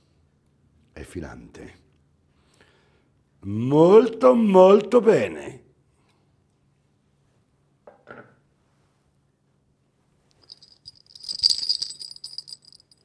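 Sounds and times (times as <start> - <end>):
metallic jingling rattle: 10.4 - 13.0.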